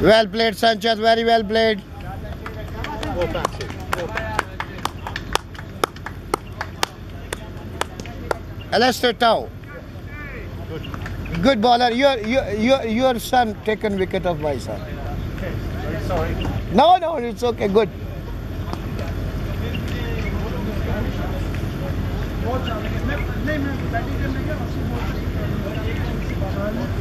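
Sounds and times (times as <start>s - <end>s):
low rumble and hiss: 0.0s - 27.0s
people clapping: 1.8s - 8.6s, 10.8s - 12.4s.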